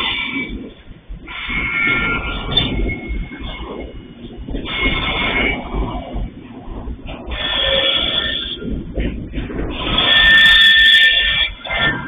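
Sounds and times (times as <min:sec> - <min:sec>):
train cars rumbling over rails: 0:00.0 - 0:12.0
high-pitched wheel squeal: 0:07.3 - 0:08.7, 0:09.8 - 0:12.0.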